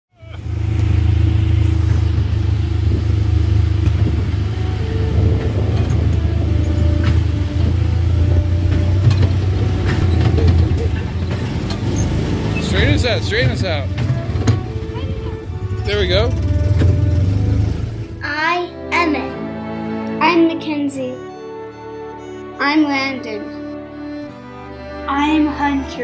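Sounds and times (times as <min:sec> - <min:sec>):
small engine humming: 0:00.2 - 0:18.2.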